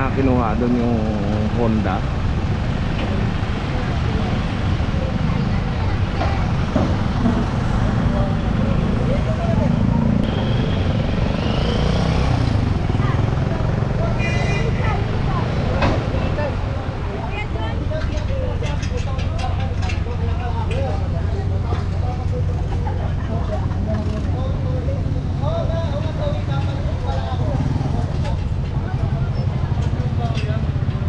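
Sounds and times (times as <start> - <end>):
people's voices: 0.0 - 2.1, 3.0 - 31.0
street traffic noise: 0.0 - 31.0.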